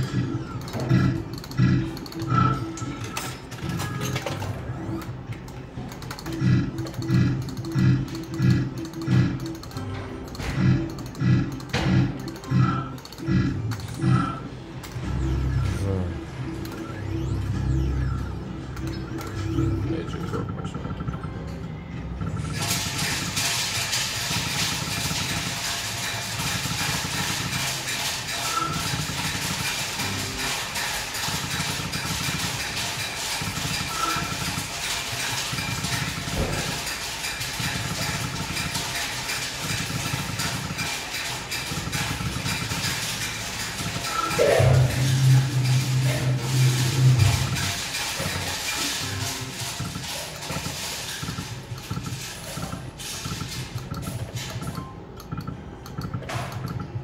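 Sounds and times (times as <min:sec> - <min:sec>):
slot machine game sounds: 0:00.0 - 0:57.0.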